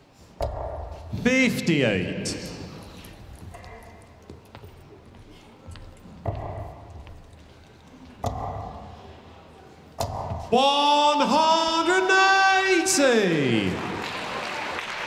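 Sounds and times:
person calling out loudly: 10.6s - 13.5s.

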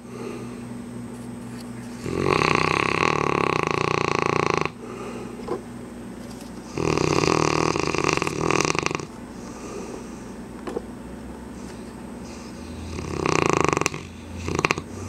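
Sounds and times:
dog snoring loudly: 2.0s - 5.1s, 6.7s - 9.9s, 12.2s - 15.0s.

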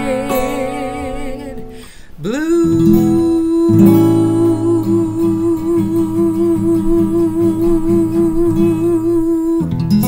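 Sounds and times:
strummed acoustic guitar: 0.0s - 10.0s
woman singing long note: 2.4s - 9.7s.

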